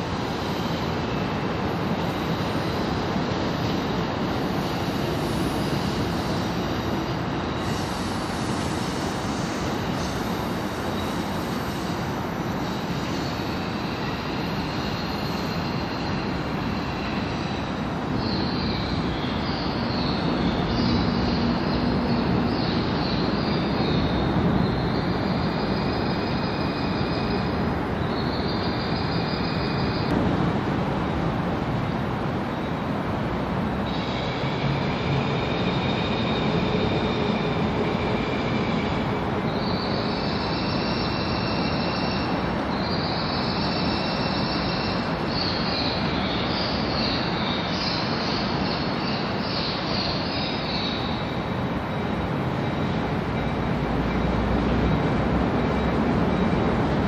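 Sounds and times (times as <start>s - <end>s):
train wheels squealing on rails: 0.0s - 30.2s, 31.2s - 57.0s
rumble of rolling train: 0.0s - 57.0s.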